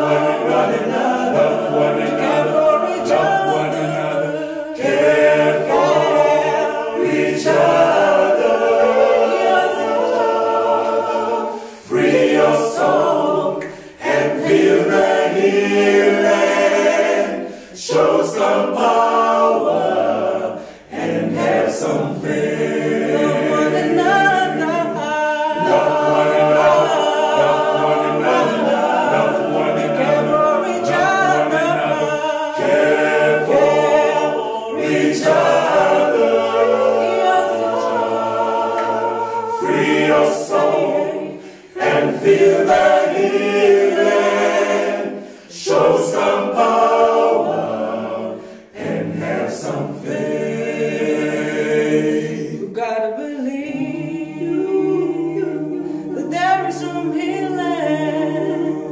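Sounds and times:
male group singing a cappella: 0:00.0 - 0:58.9.

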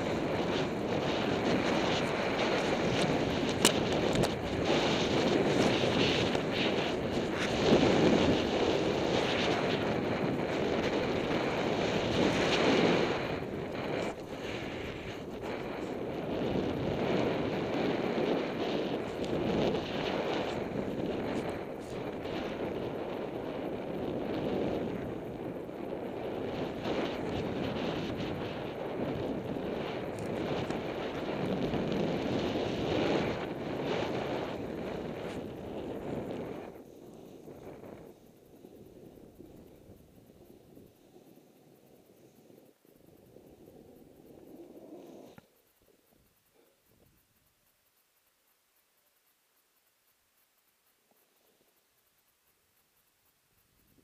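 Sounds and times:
snowboard scraping over snow: 0:00.0 - 0:41.6
wind buffeting microphone: 0:00.0 - 0:45.4.

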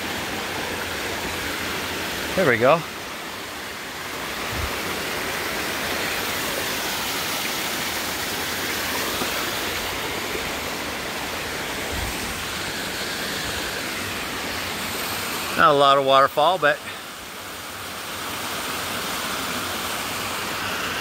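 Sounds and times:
creek flowing: 0:00.0 - 0:21.0
waterfall rushing onto rocks: 0:00.0 - 0:21.0.

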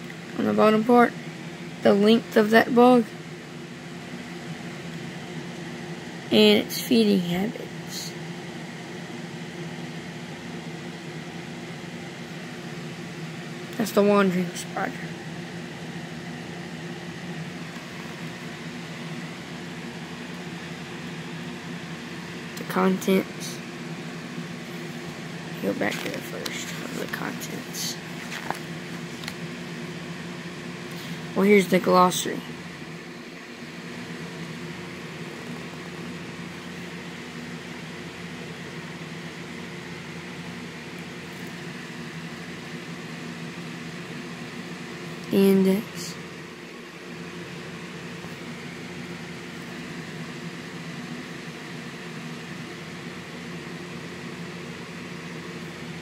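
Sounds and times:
steady mechanical hum: 0:00.0 - 0:56.0
book page rustling: 0:25.8 - 0:27.2, 0:28.1 - 0:29.4.

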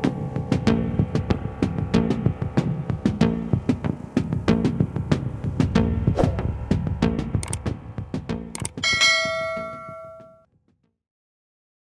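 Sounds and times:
quiet background music beats: 0:00.0 - 0:10.5
notification bell ding: 0:08.8 - 0:10.4.

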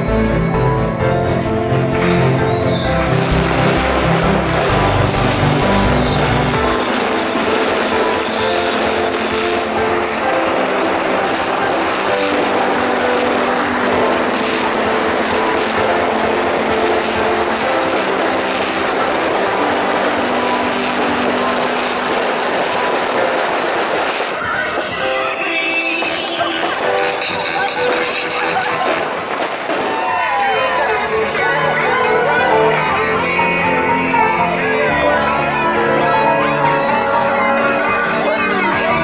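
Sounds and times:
music with held notes: 0:00.0 - 0:24.2, 0:30.3 - 0:39.0
fireworks crackling: 0:01.3 - 0:39.0.

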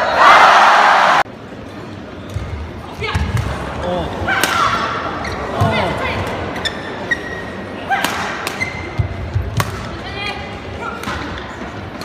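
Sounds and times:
rackets striking shuttlecock: 0:08.0 - 0:09.9.

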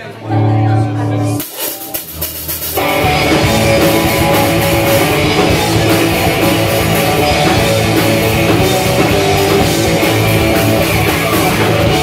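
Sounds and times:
punk rock band playing: 0:00.0 - 0:12.0
held guitar chord ringing: 0:00.2 - 0:02.1.

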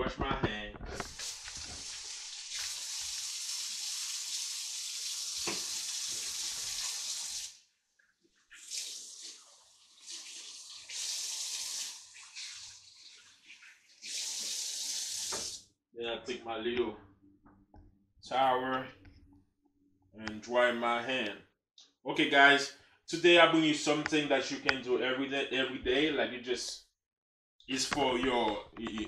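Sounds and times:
tap water running: 0:01.0 - 0:07.6, 0:08.5 - 0:15.6.

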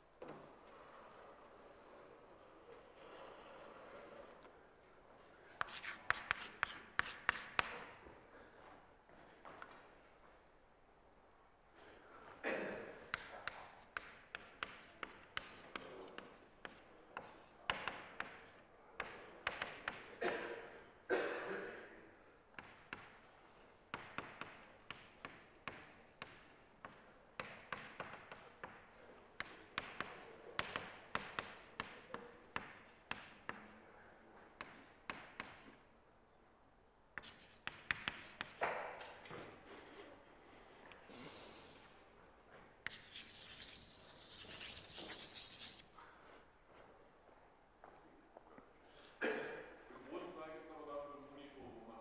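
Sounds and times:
chalk tapping and scraping: 0:05.4 - 0:08.1, 0:13.0 - 0:20.4, 0:22.5 - 0:33.8, 0:34.5 - 0:35.9, 0:37.2 - 0:46.4.

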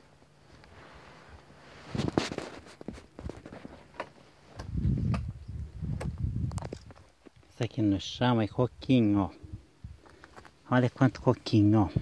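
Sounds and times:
low rumble on microphone: 0:04.4 - 0:07.0, 0:08.7 - 0:10.2, 0:11.7 - 0:12.0.

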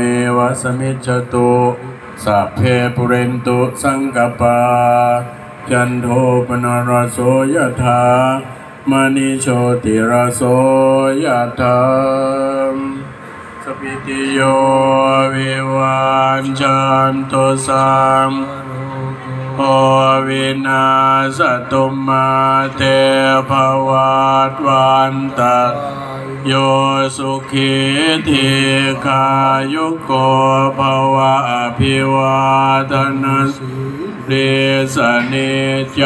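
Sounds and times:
monks chanting: 0:00.0 - 0:36.0.

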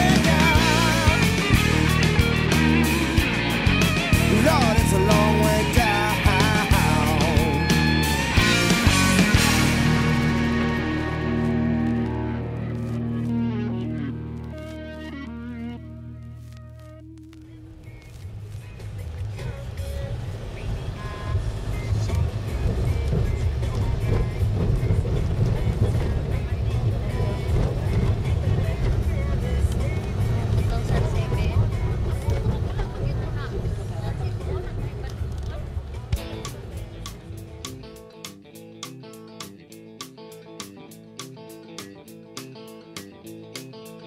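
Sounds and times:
music track: 0:00.0 - 0:32.6
engine and tyres rumbling: 0:00.0 - 0:38.0.

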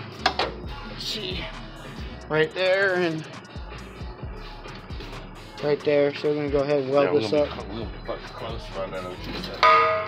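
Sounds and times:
metallic clang ringing: 0:09.6 - 0:10.0.

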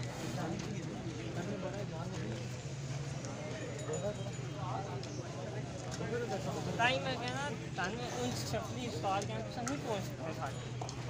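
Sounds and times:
men talking: 0:03.8 - 0:11.0.

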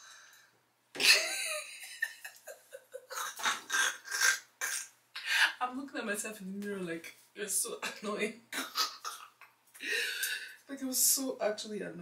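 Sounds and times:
woman laughing: 0:01.0 - 0:04.4.

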